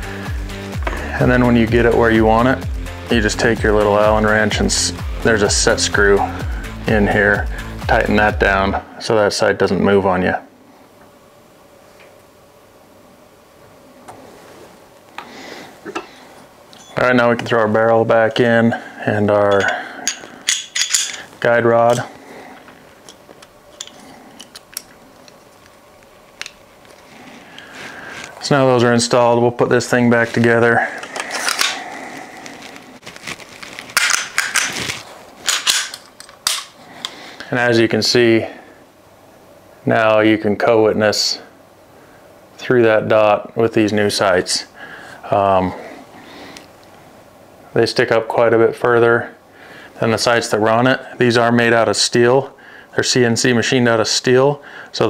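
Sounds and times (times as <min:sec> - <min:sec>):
handling noise: 0:30.0 - 0:37.2
short rustle: 0:31.8 - 0:35.5
pistol slide metallic clicks: 0:35.5 - 0:36.8.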